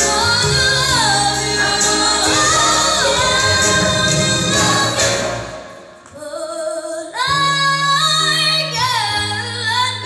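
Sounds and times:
instrumental accompaniment: 0.0s - 6.3s
girl singing into microphone: 6.1s - 10.0s.

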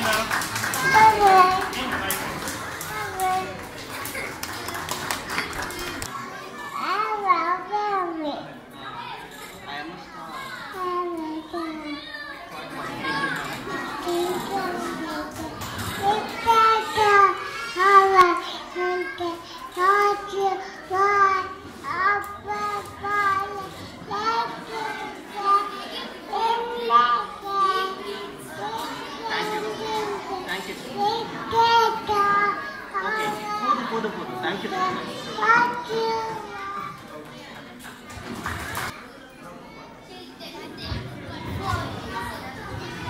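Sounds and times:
children chattering: 0.0s - 43.0s
child speaking into microphone: 0.7s - 1.8s, 2.7s - 4.2s, 5.7s - 9.2s, 10.3s - 37.0s, 39.6s - 43.0s.

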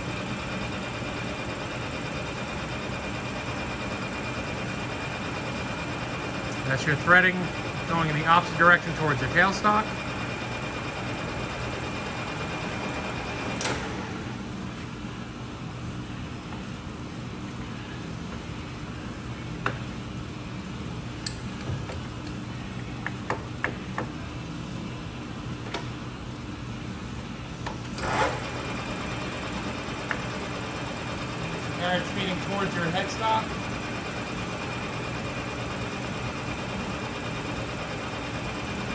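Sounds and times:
lathe humming: 28.0s - 38.9s.

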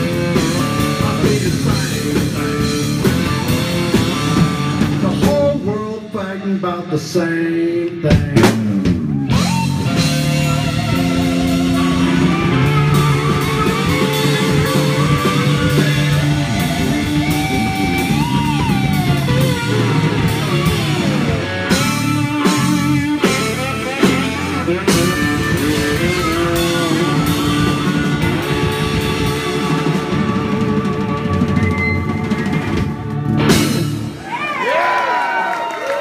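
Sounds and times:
electric guitar lead with bent notes: 0.0s - 6.1s, 8.4s - 34.4s
steady drum kit: 0.0s - 34.8s.

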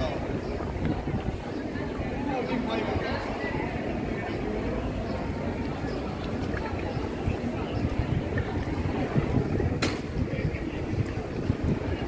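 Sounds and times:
wind buffeting microphone: 0.0s - 4.3s, 4.9s - 12.0s.

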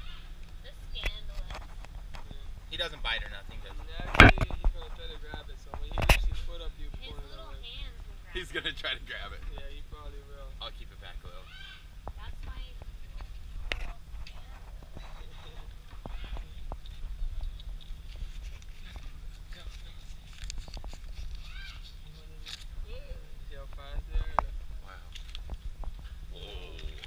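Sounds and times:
faint talk: 26.3s - 27.0s.

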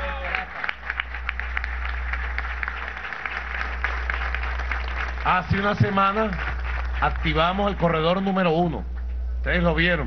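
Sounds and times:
crowd applauding: 0.0s - 8.6s.

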